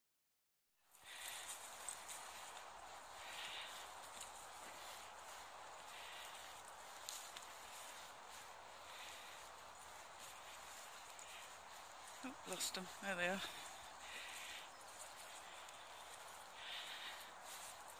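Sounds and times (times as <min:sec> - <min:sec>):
footsteps on dry leaves: 0:00.8 - 0:17.9.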